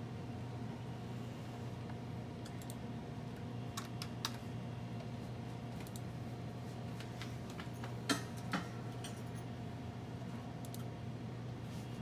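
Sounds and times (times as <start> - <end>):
low electrical hum: 0.0 - 12.0
computer mouse clicks: 2.4 - 2.8, 5.8 - 6.1, 10.6 - 10.9.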